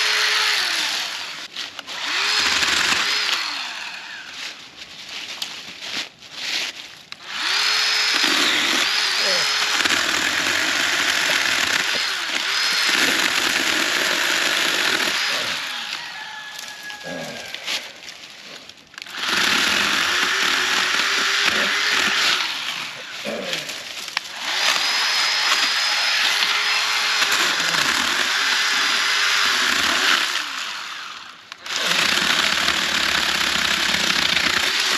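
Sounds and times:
electric saw motor whining: 0:00.0 - 0:04.4, 0:07.2 - 0:17.6, 0:19.0 - 0:34.9
saw blade cutting wood: 0:00.0 - 0:04.4, 0:07.2 - 0:34.9.

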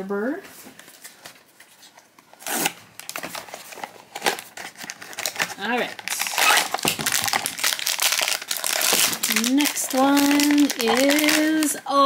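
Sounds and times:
foil pouch crinkling: 0:03.0 - 0:11.8.

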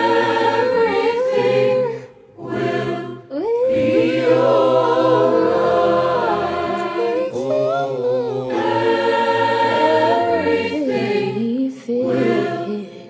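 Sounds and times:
mixed-voice choir singing in harmony: 0:00.0 - 0:13.0.

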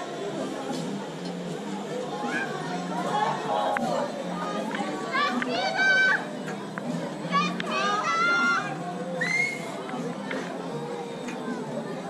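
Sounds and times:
general chatter: 0:00.0 - 0:12.0
children calling out: 0:02.1 - 0:04.0, 0:07.2 - 0:09.8.

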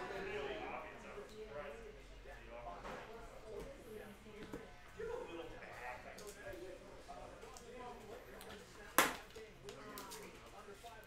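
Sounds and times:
faint speech murmuring: 0:00.0 - 0:11.0.

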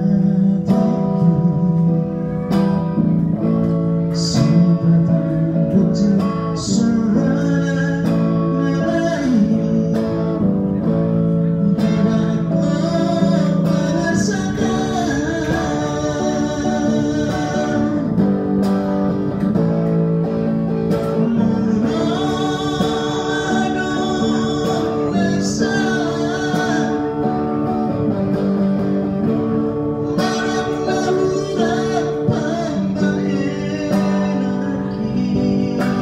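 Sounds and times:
man singing: 0:00.0 - 0:19.4, 0:20.2 - 0:36.0
acoustic guitar: 0:00.0 - 0:36.0.

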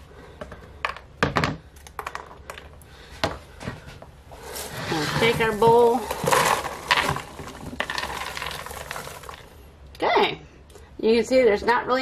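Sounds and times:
popcorn pattering into container: 0:04.4 - 0:09.6.

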